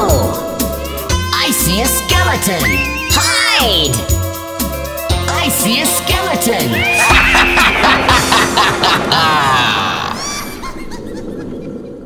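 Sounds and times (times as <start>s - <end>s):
spooky cartoon laugh with echo: 6.8s - 12.0s.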